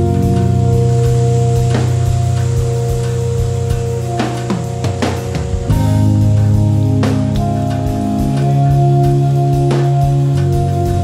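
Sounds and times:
acoustic instrumental music: 0:00.0 - 0:11.0
plucked notes: 0:00.0 - 0:11.0
soft regular percussion: 0:00.0 - 0:11.0.

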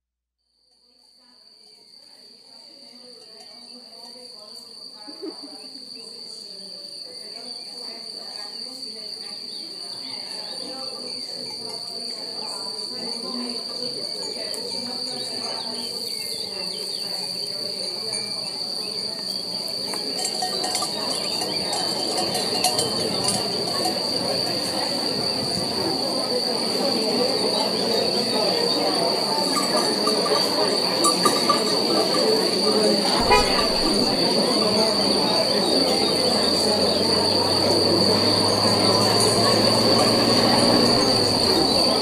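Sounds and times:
busy shifting background: 0:19.4 - 0:42.0
steady high tone: 0:33.2 - 0:35.2.

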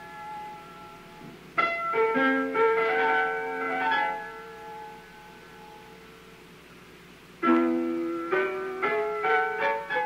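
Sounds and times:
piano chord ringing: 0:00.0 - 0:06.5, 0:07.4 - 0:10.0
vinyl surface hiss: 0:00.0 - 0:10.0.

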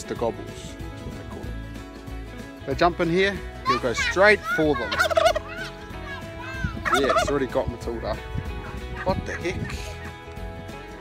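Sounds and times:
turkey gobbling: 0:04.8 - 0:05.9, 0:06.8 - 0:07.4.

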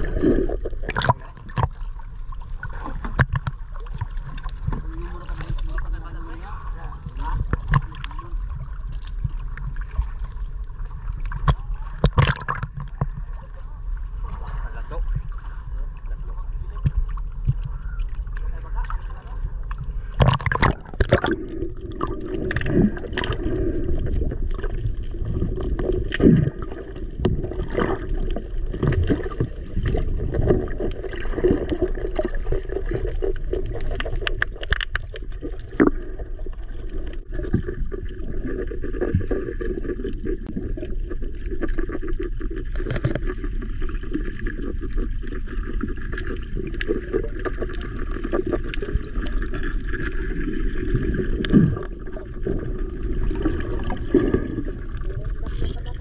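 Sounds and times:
muffled underwater rush: 0:00.0 - 0:56.0.

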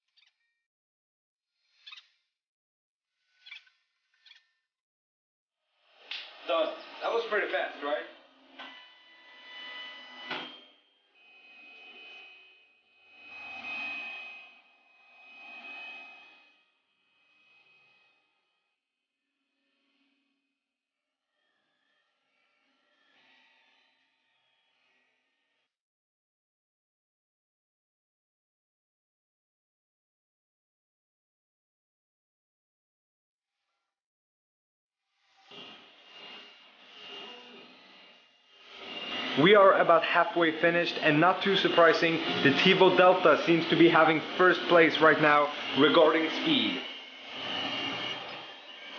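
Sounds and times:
stepper motors whining: 0:06.0 - 0:18.6, 0:35.3 - 0:48.9.

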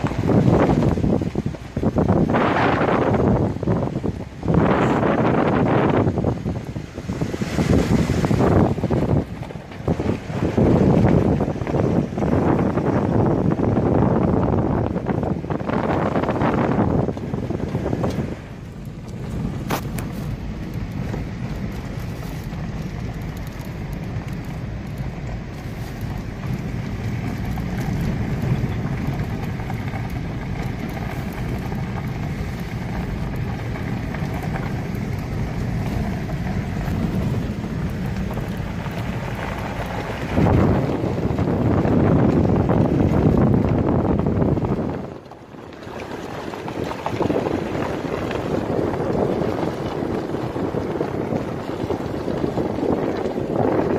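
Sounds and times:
car engine and tyre rumble: 0:00.0 - 0:53.9
wind rushing over microphone: 0:00.0 - 0:53.9.

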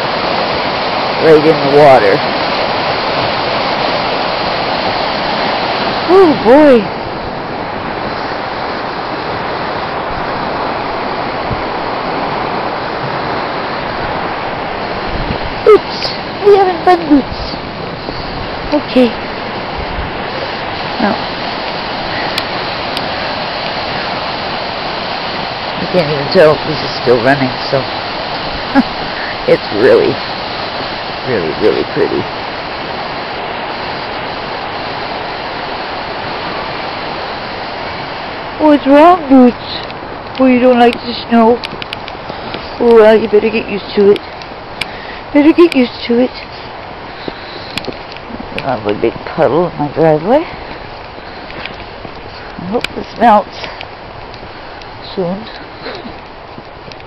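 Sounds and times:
fast-flowing river rushing: 0:00.0 - 0:57.0.

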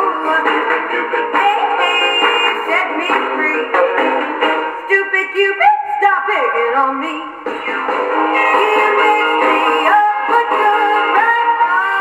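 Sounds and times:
pop record on gramophone: 0:00.0 - 0:12.0.

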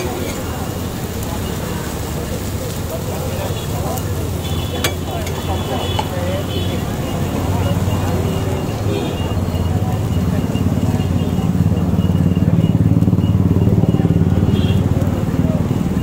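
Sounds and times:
faint background voices: 0:00.0 - 0:16.0
vehicle engine running: 0:00.0 - 0:16.0.

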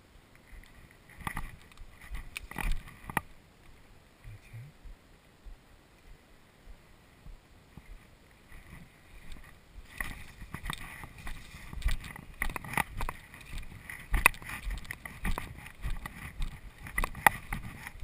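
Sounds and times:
footsteps through undergrowth: 0:07.7 - 0:18.0
plants swishing against body: 0:08.6 - 0:16.4.

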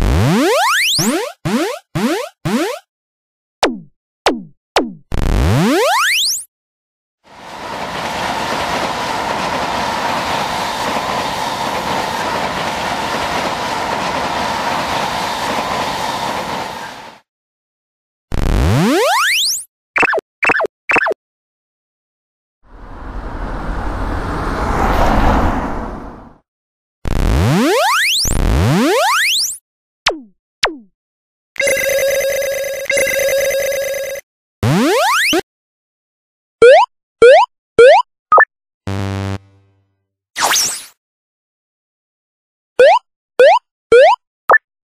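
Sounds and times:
train rumbling past: 0:07.3 - 0:17.3, 0:22.7 - 0:26.4
cartoon rising slide-up glide: 0:22.7 - 0:26.4, 0:40.4 - 0:41.0.

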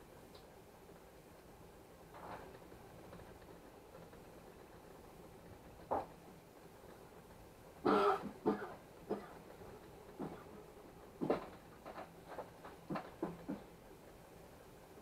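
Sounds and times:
faint three-d printer running: 0:00.0 - 0:15.0
person clearing throat: 0:07.8 - 0:09.4
person coughing: 0:07.9 - 0:09.4.

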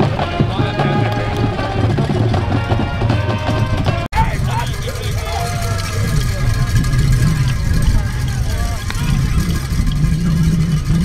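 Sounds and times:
distant shouted voices: 0:00.0 - 0:11.0
wind rumbling on microphone: 0:00.0 - 0:11.0.

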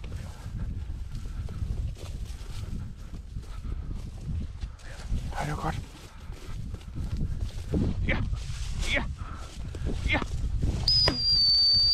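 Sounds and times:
high-pitched dog whistle: 0:10.9 - 0:11.9.

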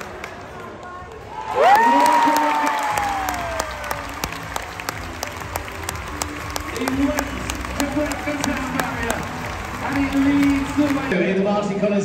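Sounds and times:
crowd applauding: 0:00.0 - 0:11.2
crowd cheering: 0:00.0 - 0:11.2
arena music: 0:01.9 - 0:11.8.

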